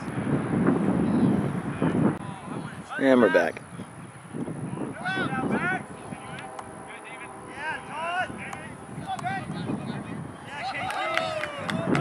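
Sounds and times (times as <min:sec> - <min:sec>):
players shouting: 0:10.4 - 0:12.0.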